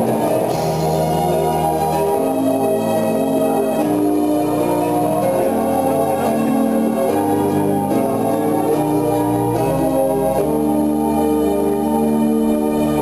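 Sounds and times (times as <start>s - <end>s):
organ-like keyboard chords: 0.0s - 13.0s.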